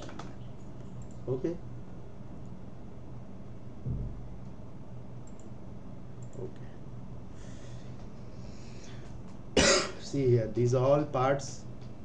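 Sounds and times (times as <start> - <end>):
faint low steady hum: 0.0 - 12.0
man coughing: 9.6 - 10.1.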